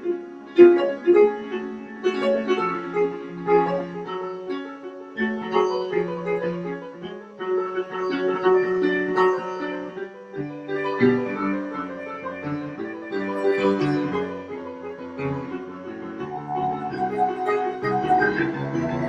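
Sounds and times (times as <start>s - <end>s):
solo piano classical music: 0.0s - 19.0s.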